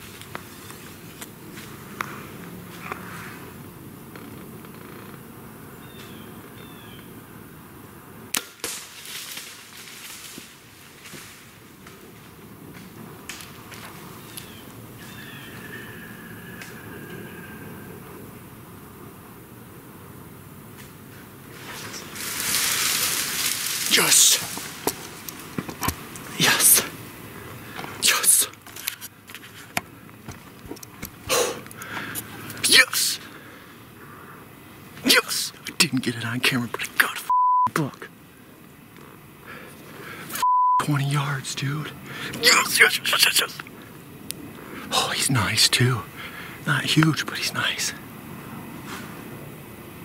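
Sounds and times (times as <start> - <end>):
bow shot crack: 8.3 - 9.0
dry leaves rustling: 8.4 - 16.9, 21.1 - 27.9
breathy whisper: 26.3 - 29.7, 39.4 - 43.6, 44.6 - 48.0.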